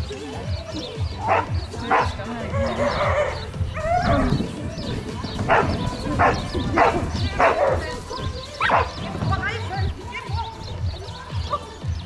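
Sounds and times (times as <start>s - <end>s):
dog barking: 1.2s - 4.2s, 5.5s - 7.9s, 8.6s - 9.0s.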